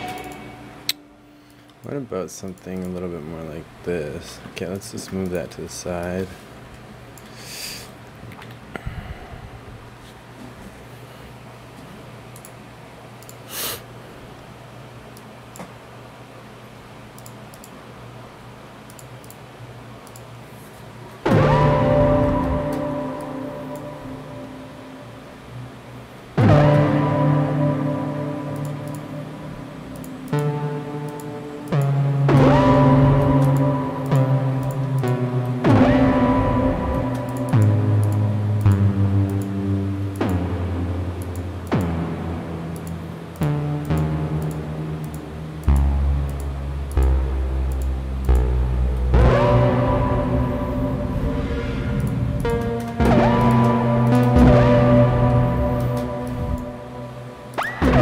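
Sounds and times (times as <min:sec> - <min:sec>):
synthesizer notes with pitch sweep: 0:00.0 - 0:02.0, 0:21.2 - 0:58.0
low bass line: 0:21.2 - 0:58.0.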